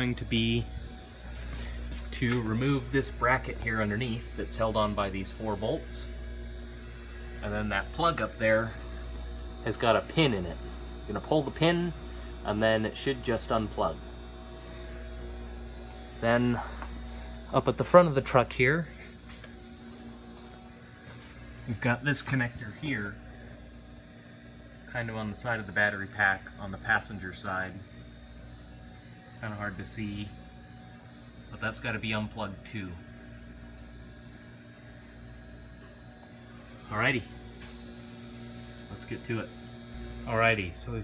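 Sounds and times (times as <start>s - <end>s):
faint constant tones: 0.0s - 41.0s
low electrical hum: 0.0s - 41.0s.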